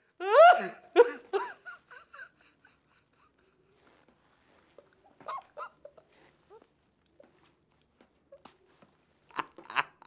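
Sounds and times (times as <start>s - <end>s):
man laughing: 0.4s - 3.6s, 9.3s - 10.0s.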